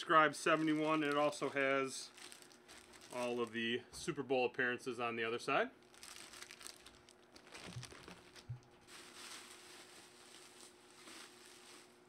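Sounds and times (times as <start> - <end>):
plastic bag crinkling: 0.0 - 3.8, 5.8 - 12.0
plastic crackle: 0.1 - 3.6, 5.8 - 12.0.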